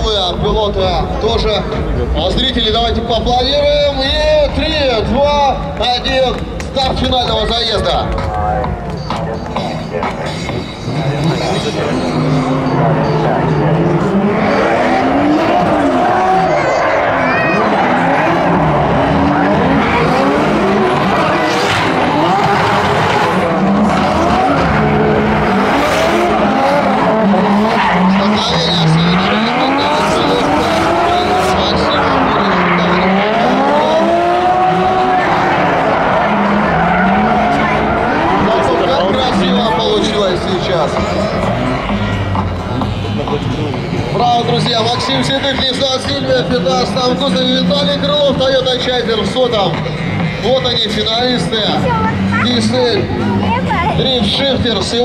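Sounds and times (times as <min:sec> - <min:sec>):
car engines revving: 0:00.0 - 0:55.0
tyres squealing: 0:09.0 - 0:49.4.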